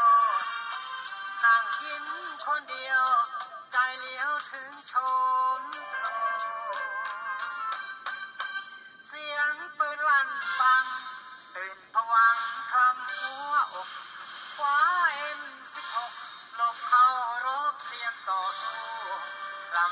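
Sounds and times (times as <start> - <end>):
person singing: 0.0 - 7.9, 9.0 - 19.9.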